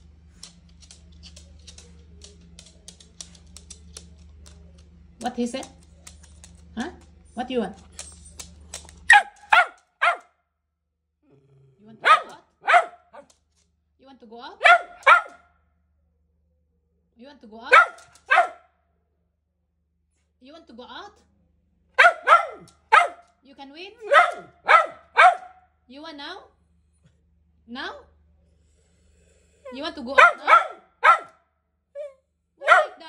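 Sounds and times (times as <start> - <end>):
small dog barking: 9.1 - 10.3, 12.0 - 13.3, 14.6 - 15.5, 17.7 - 18.7, 22.0 - 23.3, 24.0 - 25.7, 30.1 - 31.4, 32.0 - 33.0.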